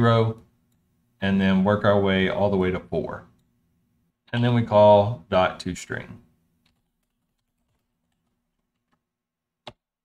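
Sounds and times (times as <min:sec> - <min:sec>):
computer keyboard typing: 0:06.7 - 0:09.0.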